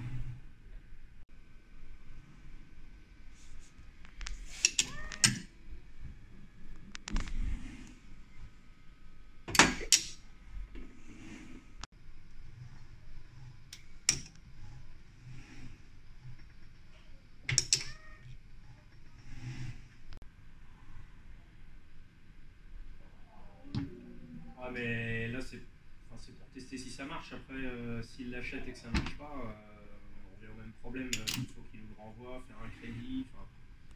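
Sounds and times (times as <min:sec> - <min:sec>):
sharp clicks and metallic clacks: 0:09.5 - 0:10.2.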